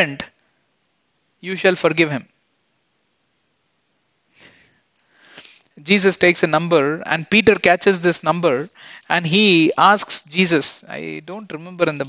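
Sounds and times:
man speaking: 5.8 - 12.0.

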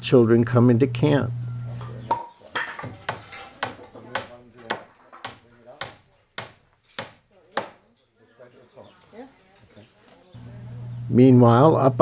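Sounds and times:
hammer driving nails into wood: 2.8 - 7.8.

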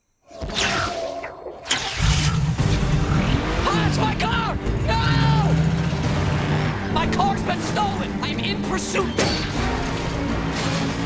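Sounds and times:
car engine running: 2.0 - 11.0.

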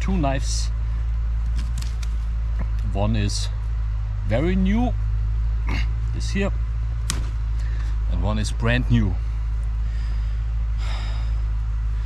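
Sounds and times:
steady low rumble: 0.0 - 12.0
person breathing in: 9.8 - 12.0.

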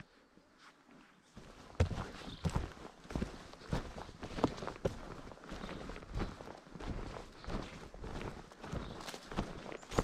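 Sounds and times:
footsteps walking: 1.4 - 10.0.

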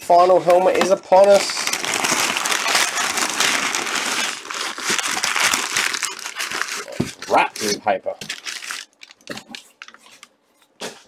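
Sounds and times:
packing paper crumpling: 0.3 - 10.4.

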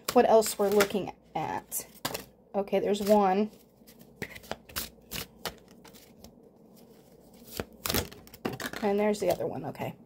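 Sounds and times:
cards being shuffled: 0.0 - 1.1, 1.9 - 9.4.

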